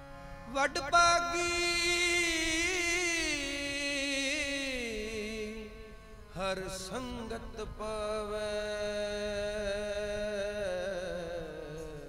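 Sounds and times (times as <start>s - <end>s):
man singing long held note: 0.4s - 12.0s.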